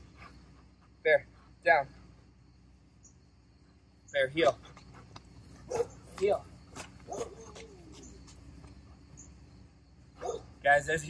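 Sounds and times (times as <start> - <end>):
dog whining: 7.1 - 8.2.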